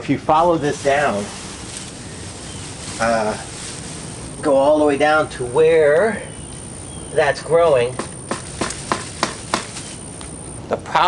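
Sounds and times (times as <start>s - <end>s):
twigs crackling and snapping: 1.4s - 4.5s, 8.0s - 10.6s.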